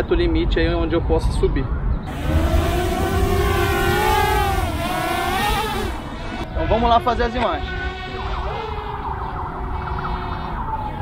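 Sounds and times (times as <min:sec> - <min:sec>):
drone propellers whining: 0:02.1 - 0:11.0.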